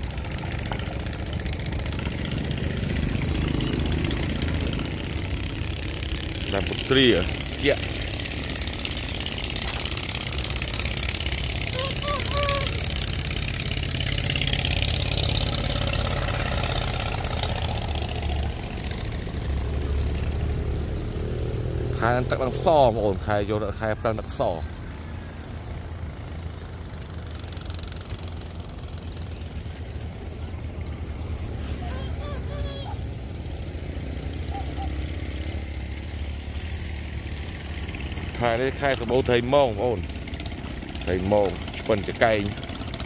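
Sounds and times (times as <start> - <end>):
engine running steadily: 0.0 - 43.0
person speaking: 11.7 - 12.9.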